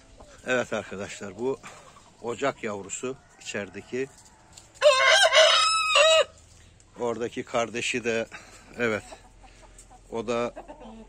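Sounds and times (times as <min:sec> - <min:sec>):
rooster crowing: 0:03.4 - 0:06.4.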